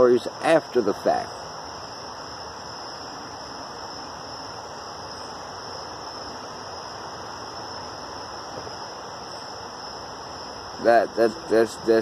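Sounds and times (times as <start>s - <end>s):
crickets chirring: 0.0s - 12.0s
low hiss: 0.0s - 12.0s.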